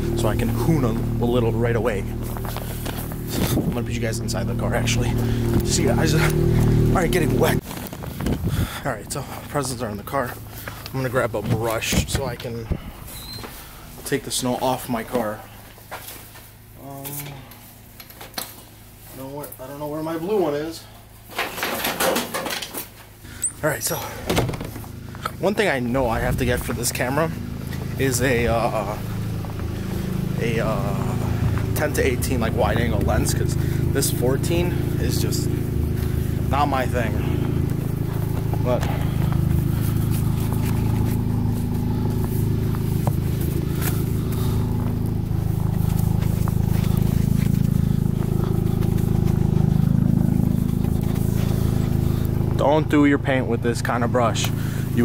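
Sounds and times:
snow brush scraping car: 0:00.0 - 0:08.6, 0:24.9 - 0:52.8, 0:53.8 - 0:55.0
car engine idling: 0:00.0 - 0:21.3, 0:23.0 - 0:55.0
clatters of items being rummaged: 0:21.2 - 0:23.2.

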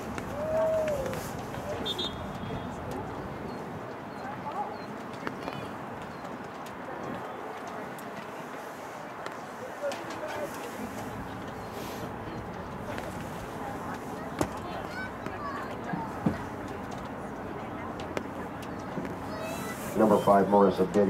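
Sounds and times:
murmur of distant voices: 0:00.0 - 0:21.0
people calling out: 0:00.3 - 0:02.8.

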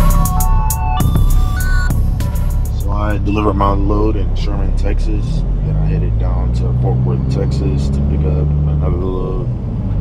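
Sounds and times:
music: 0:00.0 - 0:05.0
truck engine drone from cab: 0:00.0 - 0:10.0
person speaking or singing: 0:02.7 - 0:09.5.

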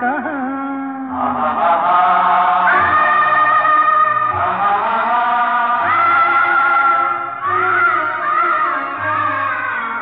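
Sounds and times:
old film song: 0:00.0 - 0:10.0.

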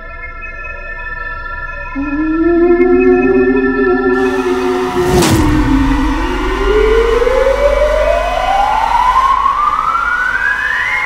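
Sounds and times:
rising tone: 0:01.9 - 0:11.0
low rumble: 0:02.0 - 0:09.6
sudden dramatic hit: 0:04.2 - 0:09.2.

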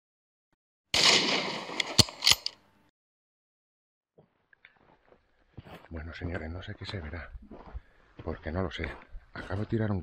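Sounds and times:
rifle shot: 0:01.0 - 0:02.5
sharp crack: 0:01.0 - 0:02.6.

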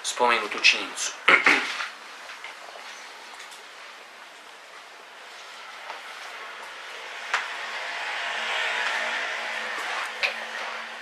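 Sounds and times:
rushing noise: 0:04.7 - 0:11.0.

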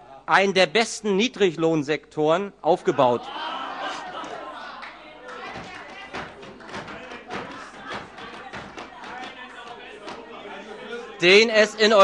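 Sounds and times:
indistinct chatter of voices: 0:02.8 - 0:12.0
people calling out: 0:02.9 - 0:11.8.

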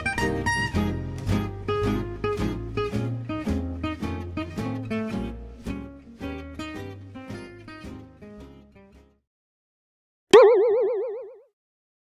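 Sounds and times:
cartoon boing sound effect: 0:10.4 - 0:11.5.

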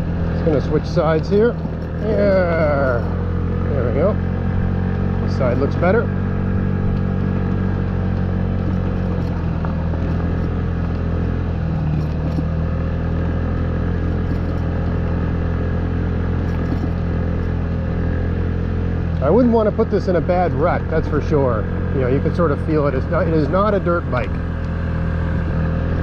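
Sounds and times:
bike clattering and rattling: 0:00.0 - 0:18.6
scooter engine cruising: 0:00.0 - 0:26.0.

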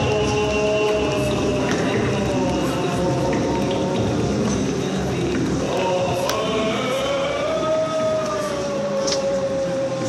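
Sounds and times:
dense noisy background: 0:00.0 - 0:10.0.

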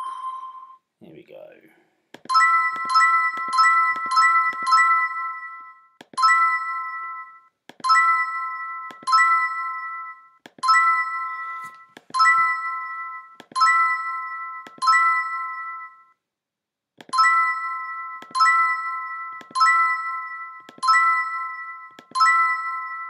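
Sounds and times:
game click: 0:02.2 - 0:04.8, 0:19.4 - 0:19.7
bright three-tone chime: 0:02.3 - 0:16.2.

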